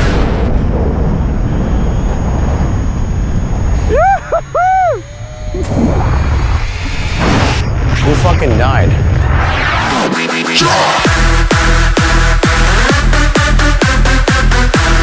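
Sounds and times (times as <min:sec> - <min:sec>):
person whooping: 0:03.8 - 0:05.1.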